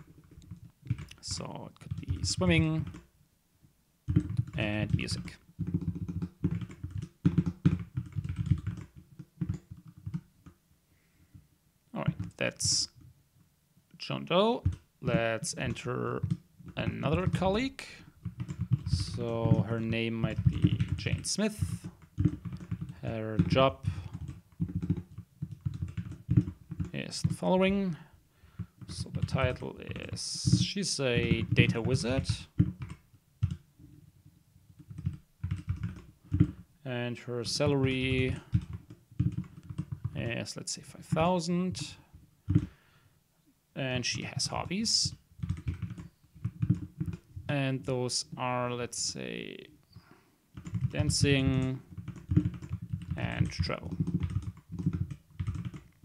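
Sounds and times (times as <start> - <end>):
typing on computer keyboard: 0.0 - 3.1, 4.1 - 10.6, 12.1 - 13.1, 14.6 - 33.7, 34.7 - 36.7, 37.4 - 40.4, 42.5 - 42.8, 44.4 - 47.5, 49.9 - 56.0.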